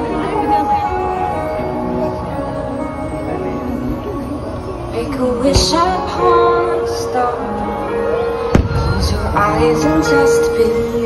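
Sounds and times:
firework bang with rumble: 8.5 - 9.0.

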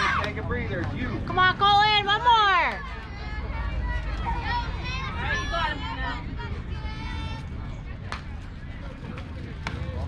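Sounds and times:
voices shouting: 0.0 - 0.5, 1.4 - 7.5.

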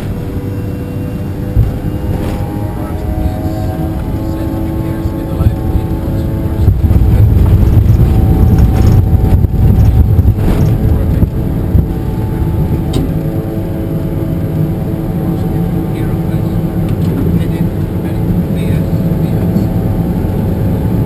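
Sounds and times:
jet engine whine: 0.0 - 21.0
low engine rumble: 0.0 - 21.0.

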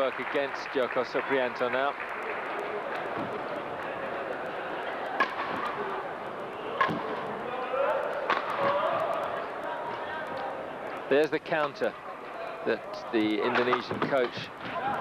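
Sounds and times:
murmur of crowd: 0.0 - 15.0
rackets hitting shuttlecock: 4.9 - 6.0, 6.7 - 7.4, 8.0 - 10.4.

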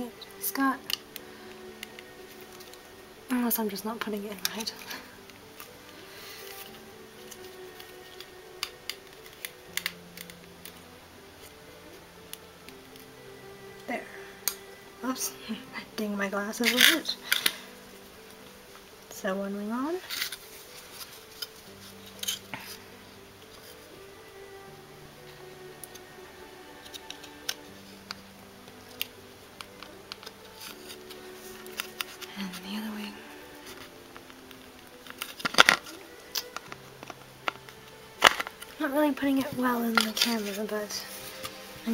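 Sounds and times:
soft background music: 0.0 - 41.9
plastic parts clicking and tapping: 7.3 - 10.8, 35.0 - 38.8.

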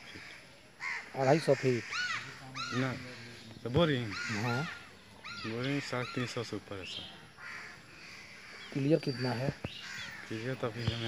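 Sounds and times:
crow cawing: 0.0 - 6.6, 7.3 - 11.0
man talking: 10.3 - 11.0.

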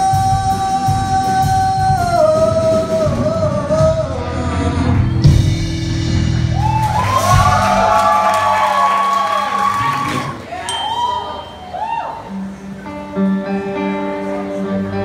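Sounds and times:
live rock band playing: 0.0 - 8.4, 10.7 - 15.0
audience whooping and cheering: 6.4 - 12.7.

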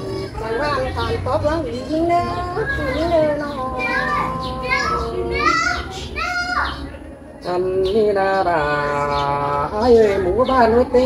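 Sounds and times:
person singing unaccompanied: 0.0 - 11.0.

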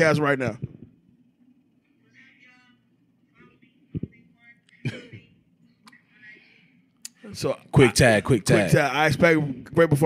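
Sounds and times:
person clearing throat: 4.8 - 5.4.

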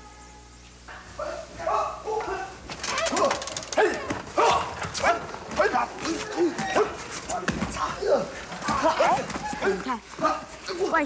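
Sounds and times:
people giving sharp shouts: 1.2 - 10.9.

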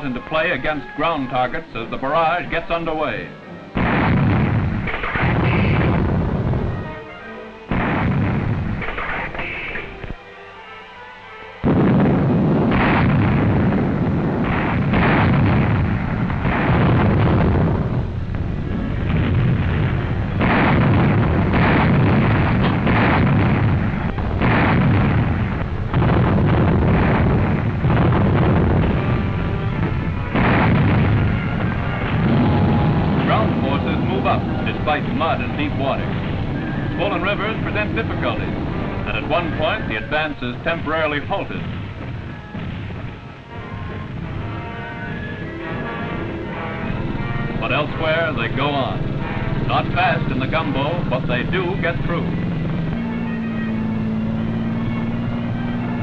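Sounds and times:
music: 0.0 - 56.0
artillery guns firing: 3.8 - 7.0, 7.7 - 10.2, 11.6 - 55.7.

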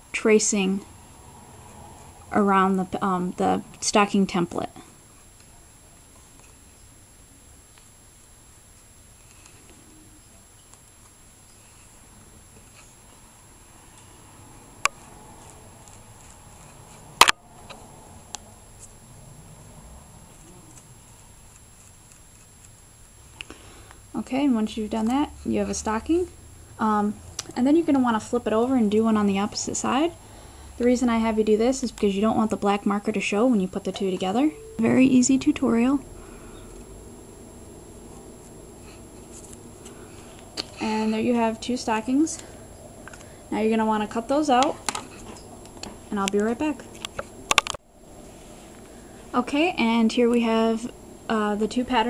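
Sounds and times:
background hiss: 0.0 - 52.0
low room hum: 0.0 - 52.0.

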